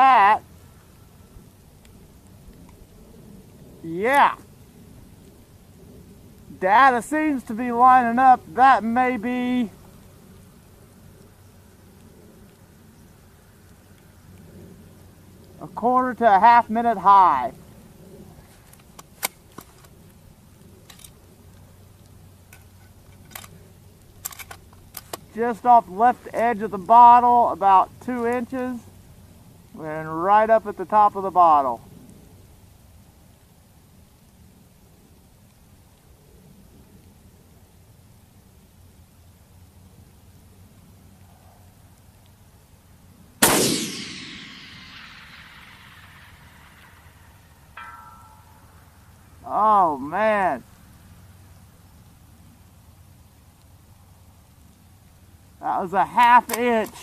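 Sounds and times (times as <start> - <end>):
rifle handling clicks: 20.8 - 21.2, 22.5 - 23.6, 24.2 - 25.3, 56.4 - 57.0
rifle shot: 43.4 - 48.5
bullet ringing on steel plate: 47.8 - 48.8.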